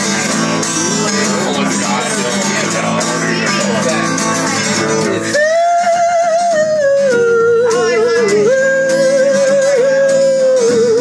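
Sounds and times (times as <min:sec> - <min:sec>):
man singing with vibrato: 0:00.0 - 0:11.0
strummed acoustic guitar: 0:00.0 - 0:11.0.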